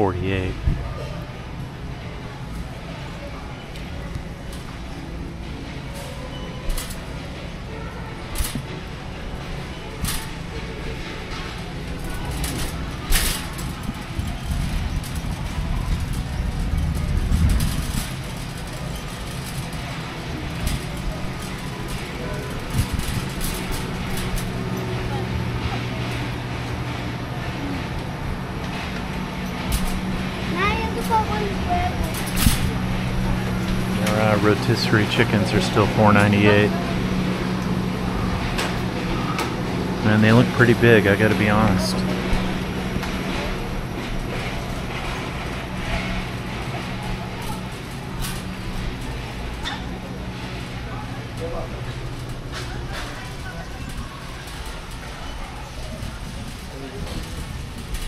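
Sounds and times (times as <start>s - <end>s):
faint voices of shoppers: 0.0s - 58.0s
shopping cart rolling: 0.0s - 58.0s
wire basket rattling and clicking: 5.9s - 7.2s, 7.8s - 26.9s, 28.6s - 58.0s.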